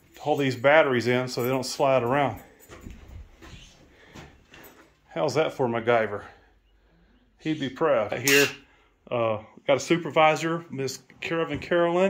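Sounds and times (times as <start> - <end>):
faint handling sounds: 0.0 - 5.2.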